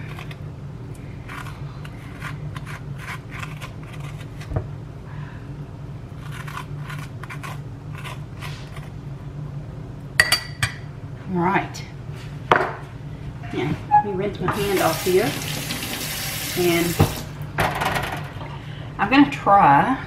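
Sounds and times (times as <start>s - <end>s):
metal spoon scraping squash: 1.1s - 4.4s, 6.2s - 9.0s.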